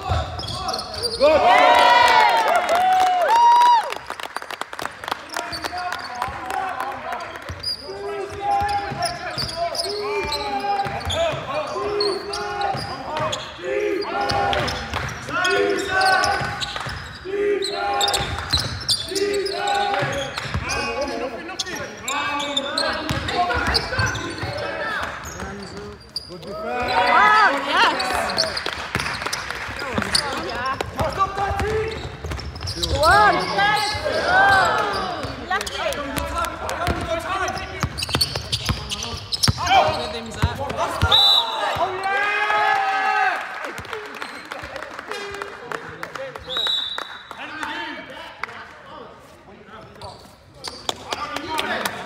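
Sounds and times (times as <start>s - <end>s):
shoes squeaking on court: 0.0s - 1.4s, 7.5s - 42.1s, 44.2s - 44.7s, 49.4s - 51.3s
players calling out: 29.8s - 43.3s.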